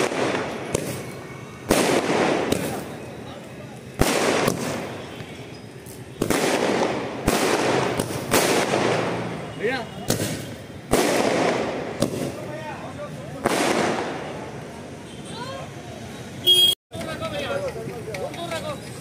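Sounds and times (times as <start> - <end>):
fireworks banging: 0.0 - 14.8.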